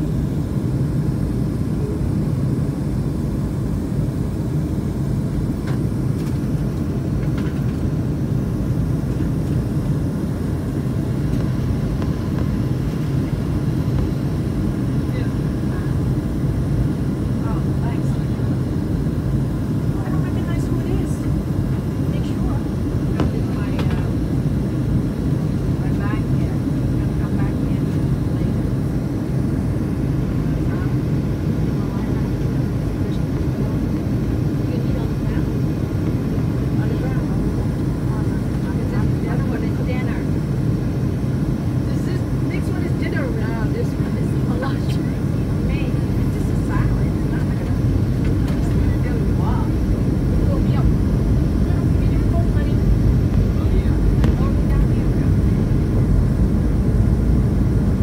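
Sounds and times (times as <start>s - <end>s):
faint passenger voices: 0.0s - 57.4s
jet engine cabin rumble: 0.0s - 58.0s.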